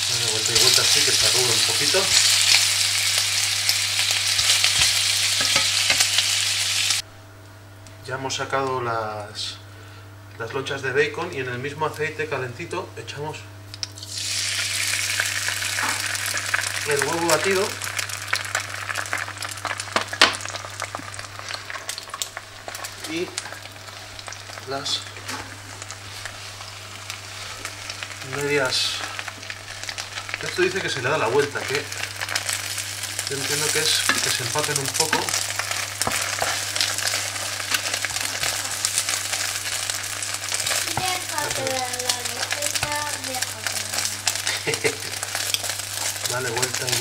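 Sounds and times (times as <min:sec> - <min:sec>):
bacon sizzling in a frying pan: 0:00.0 - 0:07.1, 0:13.7 - 0:47.0.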